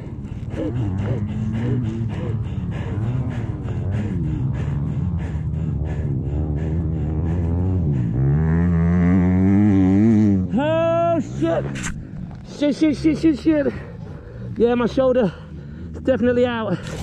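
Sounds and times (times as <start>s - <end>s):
man groaning in pain: 0.0s - 8.2s, 10.4s - 11.6s.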